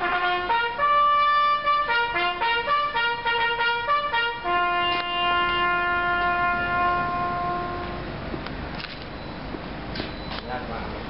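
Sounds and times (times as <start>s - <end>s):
trumpet long steady note: 0.0s - 8.2s.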